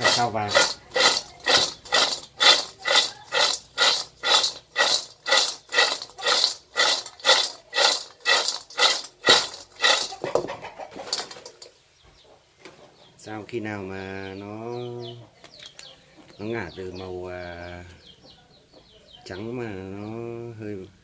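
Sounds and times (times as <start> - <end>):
banana pieces rattling in a wok: 0.0 - 11.8.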